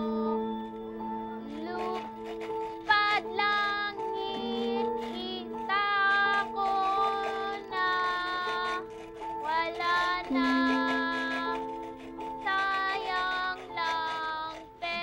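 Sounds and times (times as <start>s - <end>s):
girl singing slow song: 0.0s - 8.8s, 9.4s - 11.7s
held chords: 0.0s - 15.0s.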